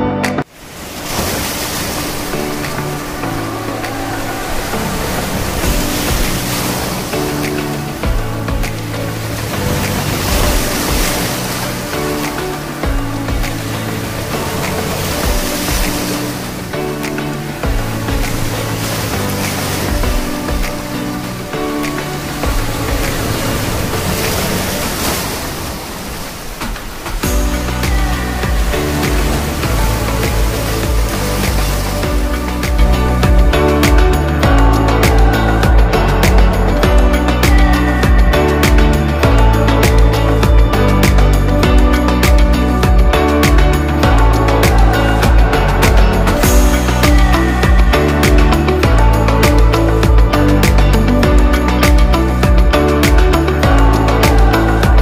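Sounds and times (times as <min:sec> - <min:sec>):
soft background music: 0:00.0 - 0:55.0
waves breaking on a beach: 0:00.4 - 0:55.0
water washing over wet sand: 0:00.5 - 0:55.0.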